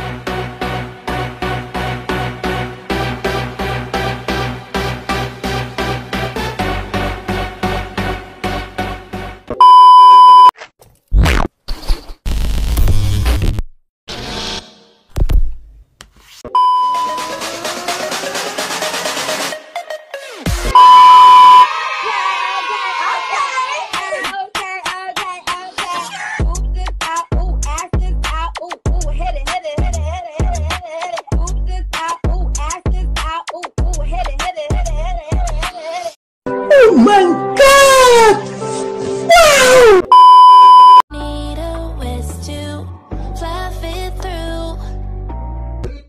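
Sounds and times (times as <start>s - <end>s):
loud steady electronic beep: 9.6s - 10.5s, 16.6s - 17.3s, 20.7s - 21.7s, 40.1s - 41.0s
voice wailing over backing track: 36.7s - 38.5s, 39.3s - 40.1s.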